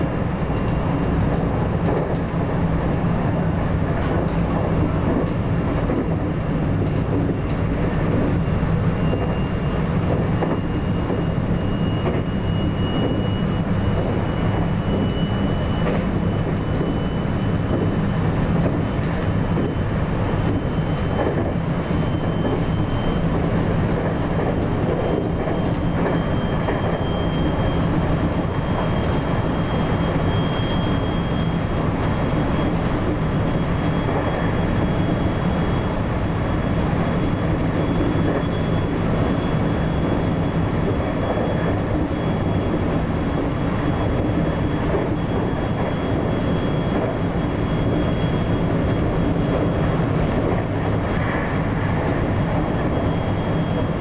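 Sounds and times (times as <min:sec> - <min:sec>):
train wheels rumbling: 0:00.0 - 0:54.0.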